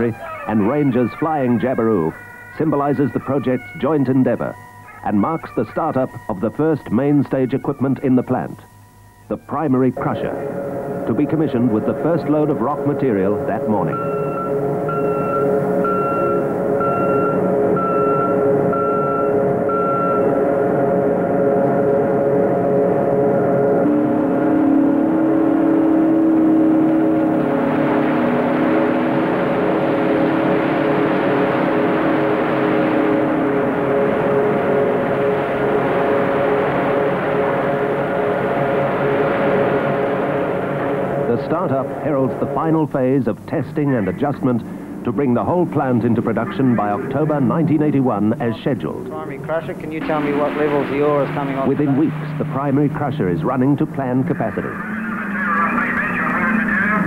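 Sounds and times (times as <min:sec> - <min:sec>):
crusher machine hum: 0:00.0 - 0:57.0
low drone: 0:00.0 - 0:57.0
pulsing beeper: 0:00.0 - 0:57.0.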